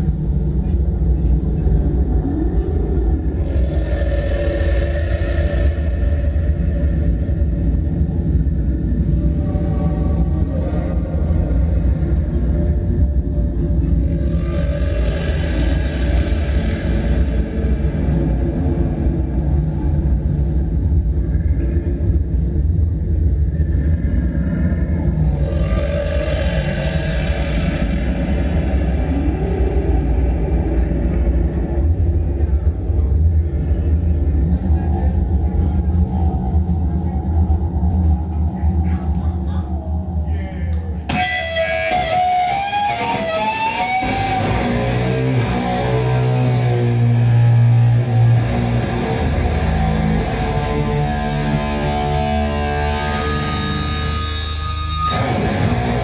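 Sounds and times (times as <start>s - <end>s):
distorted electric guitars: 3.1s - 20.7s, 23.6s - 32.1s, 41.1s - 56.0s
bass guitar: 40.7s - 56.0s.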